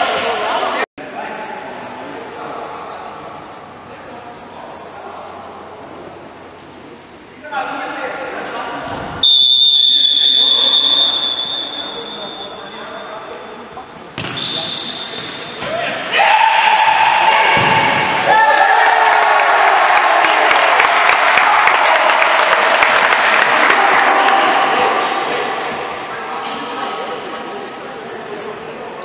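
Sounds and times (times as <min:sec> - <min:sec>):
referee's whistle blast: 0:09.2 - 0:12.7
spectators shouting and cheering: 0:15.7 - 0:26.7
clapping: 0:18.5 - 0:24.5.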